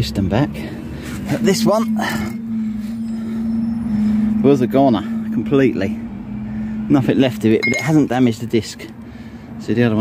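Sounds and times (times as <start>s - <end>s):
steady hum: 0.6s - 8.2s.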